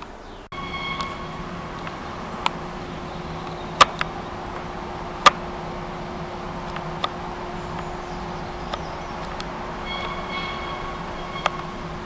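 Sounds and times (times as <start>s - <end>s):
machinery hum: 0.0s - 12.0s
high squealing tone: 0.5s - 3.8s, 9.6s - 12.0s
sharp clicks: 1.0s - 2.6s, 3.4s - 5.5s, 6.6s - 7.9s, 8.6s - 10.5s.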